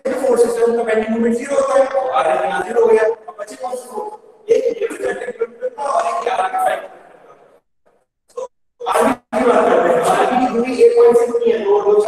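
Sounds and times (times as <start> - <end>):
man talking: 0.0 - 7.4, 8.3 - 12.0.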